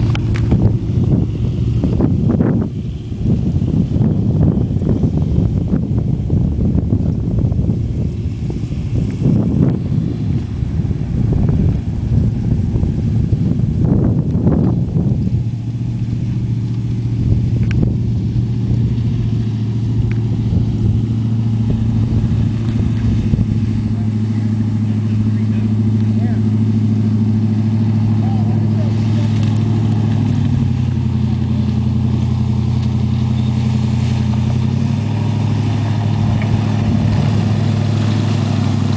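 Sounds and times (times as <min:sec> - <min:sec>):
swamp buggy engine: 0:00.0 - 0:38.9.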